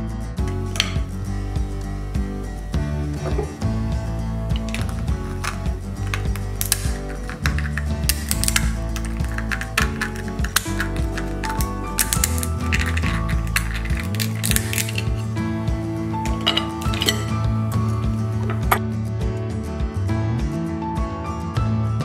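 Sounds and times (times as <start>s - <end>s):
background music: 0.0s - 22.0s
crab cracker cracking shells: 4.5s - 15.5s, 16.1s - 18.8s.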